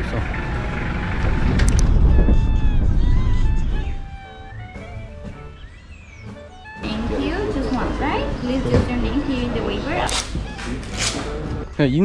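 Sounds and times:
low outdoor rumble: 0.0 - 6.2, 6.8 - 11.6
background music: 0.0 - 12.0
sharp clicks: 10.1 - 11.3.

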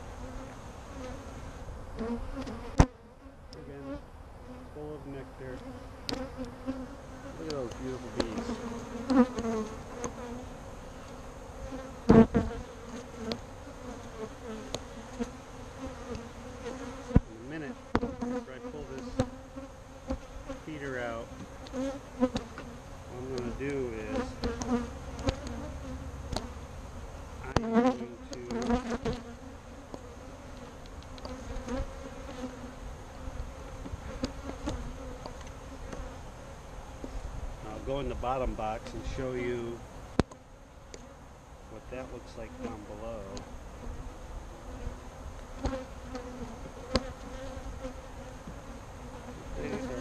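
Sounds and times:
bees buzzing: 0.0 - 50.0
wooden frames knocking hive box: 23.3 - 25.7, 27.5 - 29.3.

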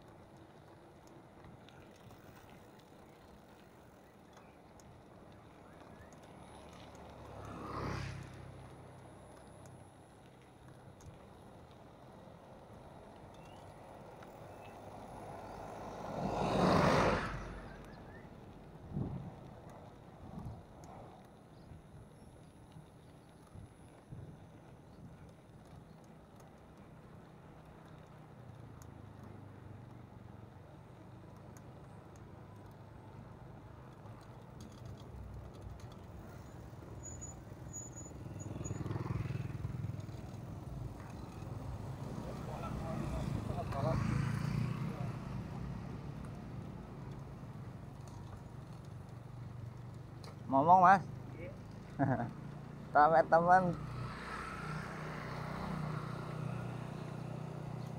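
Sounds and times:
bicycle tyre and wind rumble: 0.0 - 57.9
motor traffic: 0.0 - 57.9.

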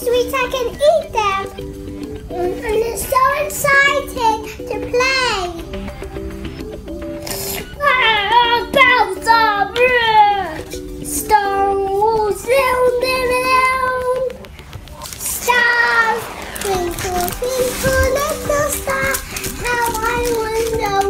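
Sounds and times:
child singing in high voice: 2.3 - 5.7, 7.8 - 14.4, 15.3 - 21.0.

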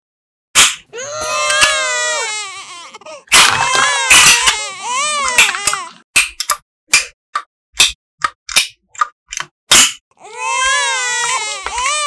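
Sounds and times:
high wavering crying voice: 0.9 - 6.0, 10.2 - 12.0
sharp plastic clicks: 5.3 - 10.0.

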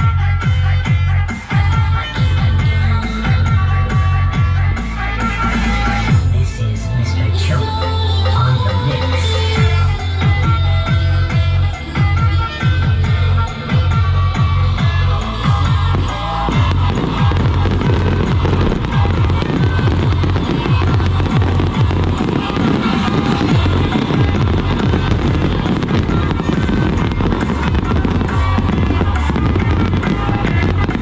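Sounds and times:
dance music with heavy bass: 0.0 - 31.0
fireworks crackling and popping: 9.6 - 31.0.

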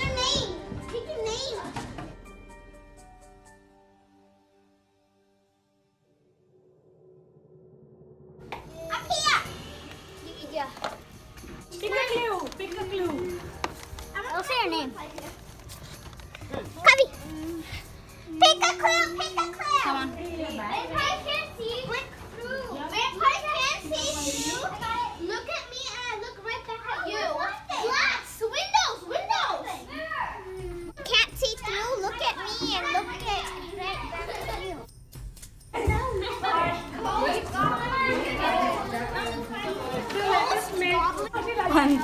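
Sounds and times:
children talking and calling out: 0.0 - 2.1, 8.6 - 34.9, 35.7 - 42.0
low party chatter: 16.3 - 30.9, 35.7 - 42.0.

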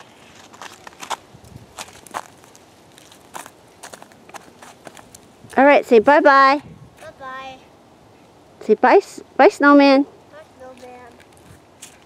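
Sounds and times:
footsteps on snow: 0.0 - 5.7, 10.7 - 12.0.

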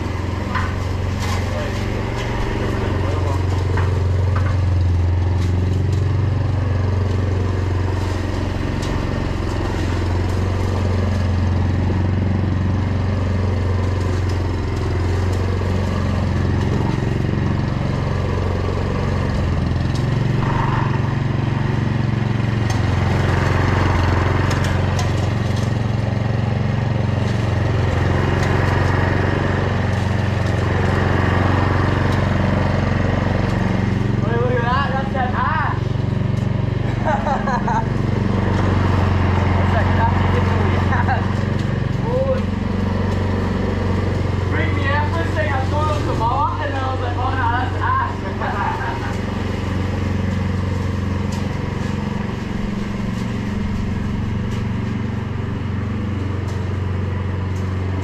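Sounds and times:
lawn mower running: 0.0 - 58.0.

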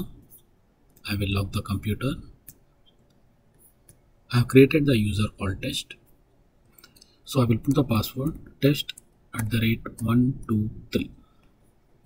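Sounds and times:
computer mouse clicking: 2.4 - 4.1.

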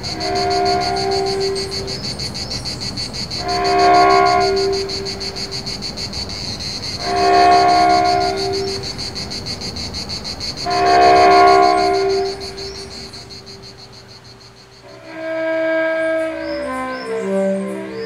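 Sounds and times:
horn blasts: 0.0 - 2.0, 3.4 - 5.5, 7.0 - 8.8, 10.6 - 13.8, 14.8 - 18.0
insects chirring: 0.0 - 18.0.

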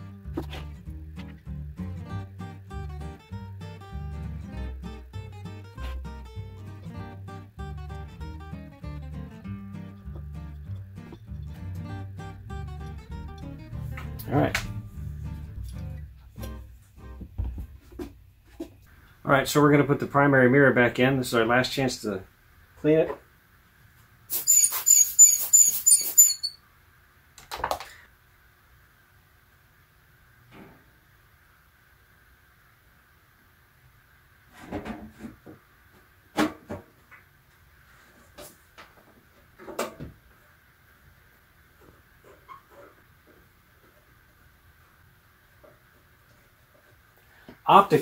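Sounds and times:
air-blower bulb puffing and squeaking: 24.3 - 26.6.

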